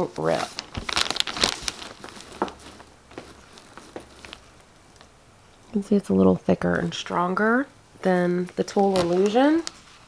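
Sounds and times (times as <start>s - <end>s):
netting rustling and crinkling: 0.0s - 10.0s.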